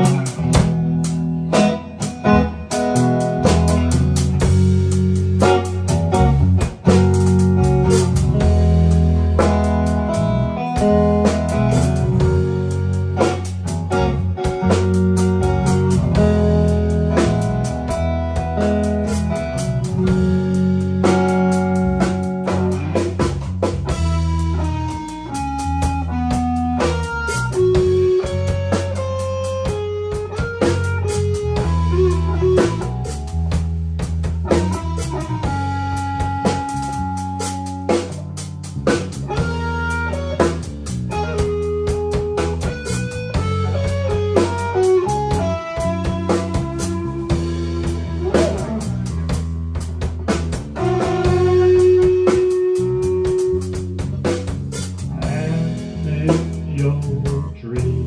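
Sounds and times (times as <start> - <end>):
bass guitar: 0.0 - 58.0
drum kit: 0.0 - 58.0
electric guitar lead lines: 0.0 - 58.0.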